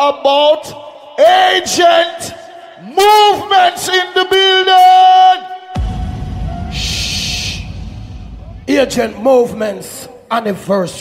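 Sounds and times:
deep bass rumble: 5.8 - 9.6
burst of hissing noise: 6.4 - 8.6.

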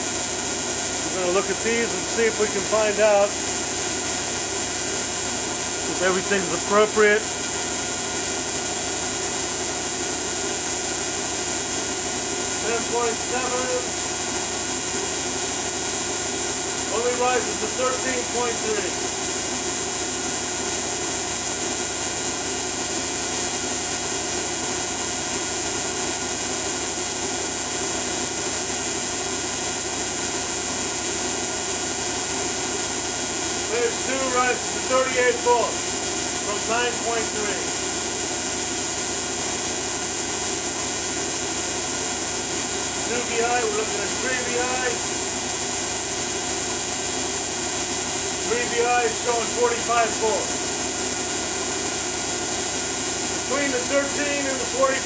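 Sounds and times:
tesla coil hiss and hum: 0.0 - 7.8, 11.0 - 14.1, 16.8 - 19.1, 33.6 - 42.0, 42.6 - 47.1, 47.7 - 55.0.

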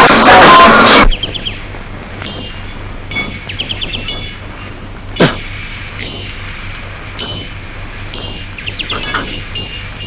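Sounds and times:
low steady hum: 1.0 - 10.0
high clinks: 2.2 - 6.4, 7.1 - 10.0.

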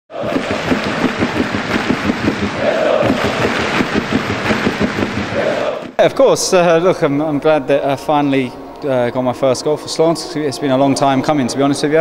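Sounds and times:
crowd cheering and chanting: 0.1 - 6.0.

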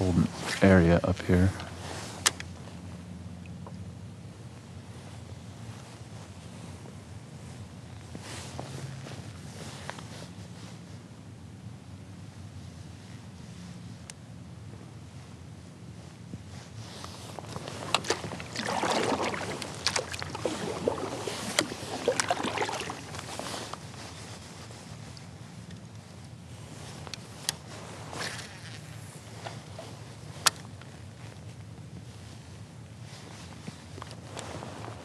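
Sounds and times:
paddle splashing water: 17.4 - 23.9.

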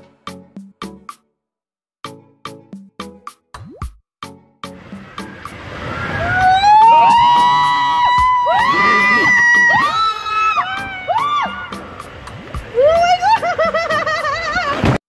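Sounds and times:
choppy music beat: 2.1 - 9.7, 10.6 - 14.1
water rushing through tube: 4.8 - 13.4
person screaming: 6.3 - 11.7.

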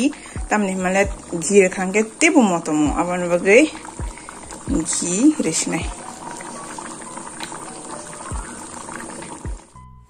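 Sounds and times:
stew bubbling at a boil: 0.0 - 9.8
background music: 0.0 - 10.0.

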